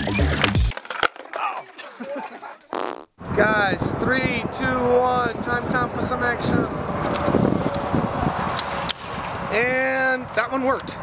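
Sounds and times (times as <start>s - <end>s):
wind buffeting microphone: 3.2s - 11.0s
instant camera clicking: 7.0s - 7.3s.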